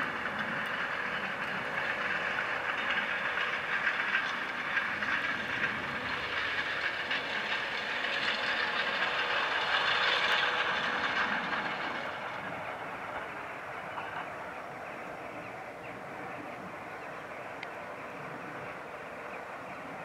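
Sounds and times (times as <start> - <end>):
tractor engine drone: 0.0 - 20.0.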